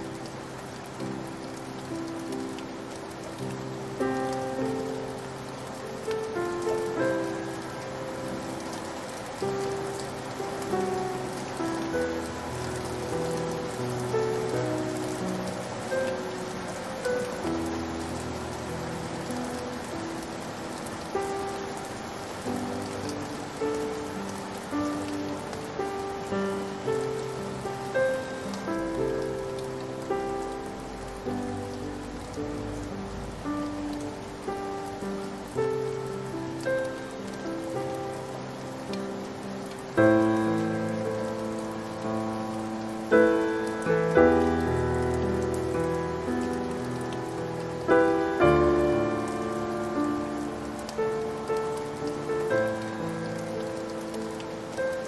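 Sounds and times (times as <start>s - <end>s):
rain falling: 0.0s - 55.0s
slow solo piano: 0.0s - 55.0s.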